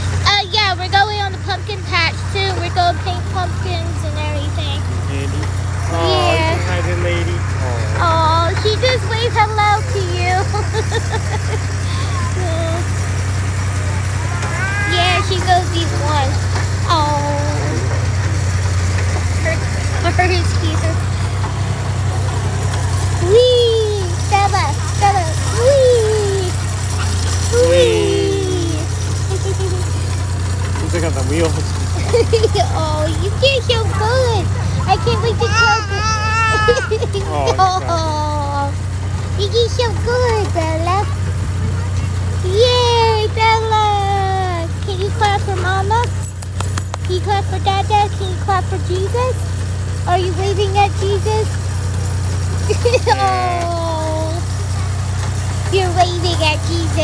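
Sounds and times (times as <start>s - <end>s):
people talking: 0.0s - 13.0s, 13.6s - 18.5s, 19.1s - 21.4s, 23.1s - 51.6s, 52.6s - 54.8s, 55.6s - 57.0s
tractor engine droning: 0.0s - 57.0s
child's voice: 0.2s - 4.8s, 5.9s - 6.6s, 11.7s - 13.0s, 13.9s - 17.9s, 23.2s - 26.6s, 27.5s - 29.0s, 32.4s - 38.8s, 39.4s - 46.1s, 47.1s - 49.5s, 52.7s - 54.5s, 55.7s - 57.0s.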